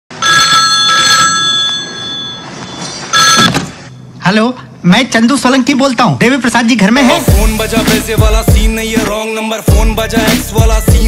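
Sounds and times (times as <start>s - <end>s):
telephone bell ringing: 0.1s - 3.6s.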